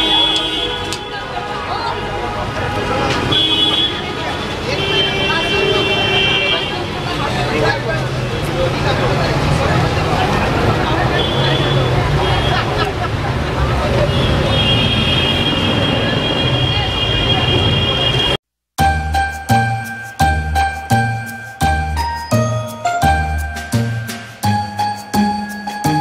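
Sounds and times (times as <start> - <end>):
street traffic: 0.0 - 26.0
light jingle music with bells: 18.8 - 26.0.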